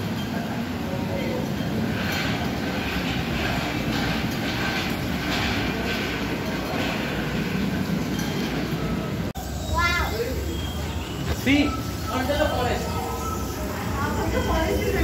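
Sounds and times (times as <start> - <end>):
rumbling background noise: 0.0 - 12.1
faint voices: 0.0 - 15.0.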